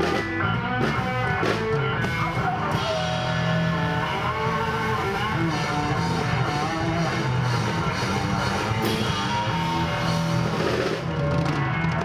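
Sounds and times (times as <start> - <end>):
blues-rock band playing: 0.0 - 12.0
electric guitar: 0.0 - 12.0.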